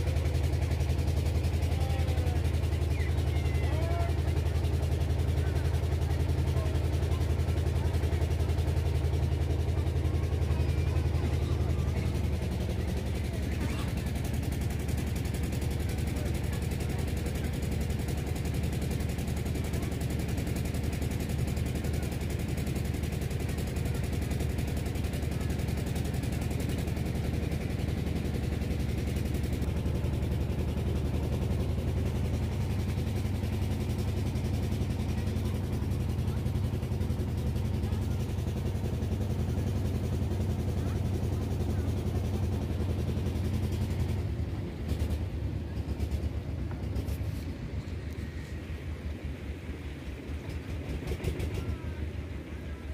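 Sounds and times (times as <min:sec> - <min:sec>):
boat engine puttering: 0:00.0 - 0:52.6.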